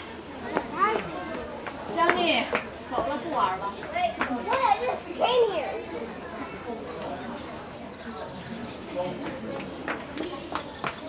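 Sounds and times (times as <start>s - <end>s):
faint chatter: 0.0s - 11.0s
children calling out: 3.6s - 6.7s.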